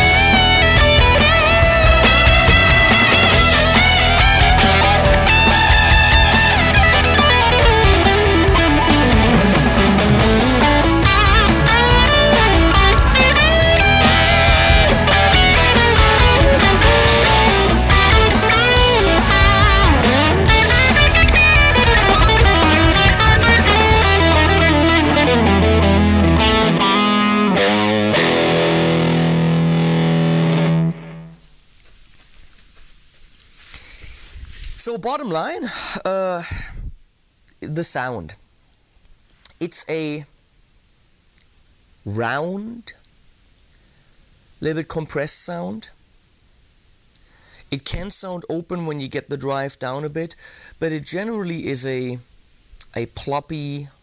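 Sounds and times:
overdriven electric guitar: 0:00.0 - 0:31.4.

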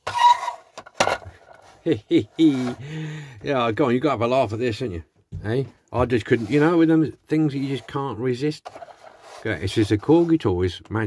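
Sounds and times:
man chuckling: 0:01.8 - 0:03.3.

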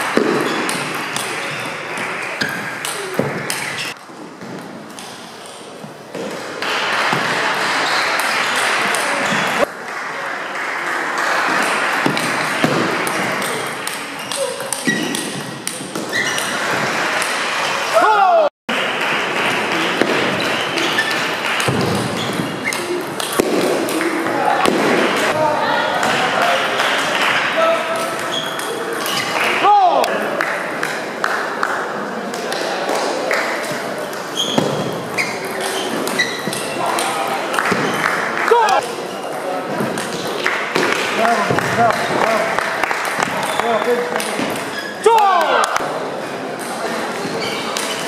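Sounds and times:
murmur of voices: 0:05.1 - 0:48.0.

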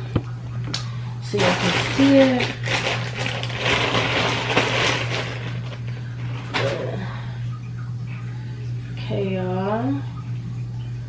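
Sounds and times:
steady low hum: 0:00.0 - 0:11.0
wrapping rustling and crinkling: 0:01.3 - 0:07.0.

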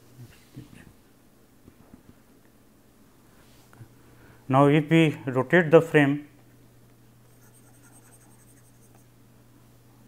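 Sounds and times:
steady low hum: 0:00.0 - 0:10.0
stylus scratching on pen tablet: 0:07.3 - 0:09.1.

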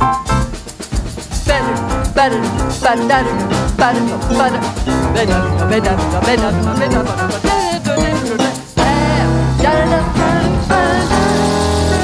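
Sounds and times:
grand piano: 0:00.0 - 0:00.7, 0:01.6 - 0:12.0
drums: 0:00.0 - 0:12.0
person singing melody: 0:01.6 - 0:11.3
electric keyboard: 0:03.1 - 0:12.0
electric bass: 0:03.6 - 0:07.6.

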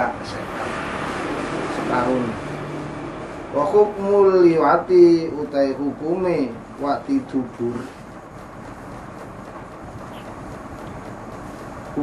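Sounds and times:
low rumble: 0:00.1 - 0:12.0.

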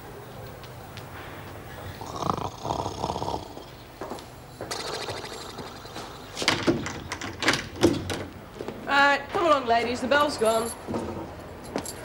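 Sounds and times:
woman snoring: 0:02.0 - 0:03.6.

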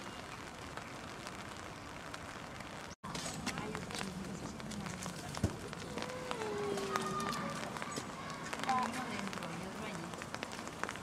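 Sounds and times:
indistinct chatter of onlookers: 0:03.6 - 0:10.2.

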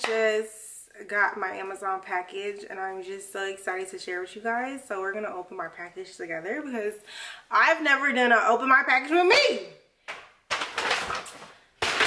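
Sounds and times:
paper bag crinkling: 0:10.5 - 0:12.0.

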